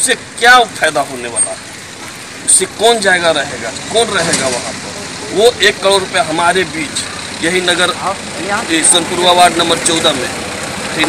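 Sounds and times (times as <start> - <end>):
man speaking: 2.4 - 11.0.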